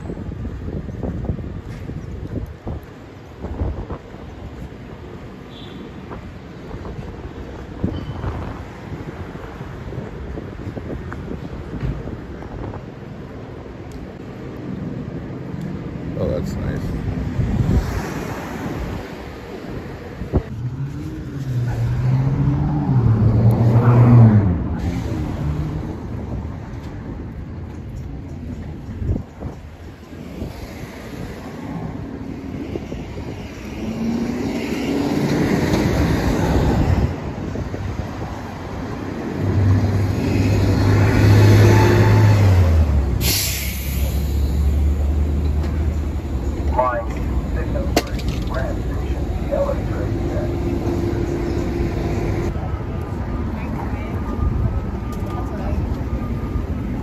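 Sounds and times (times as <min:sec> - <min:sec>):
passing vehicle engines: 0:00.0 - 0:57.0
sharp hiss: 0:43.2 - 0:44.6.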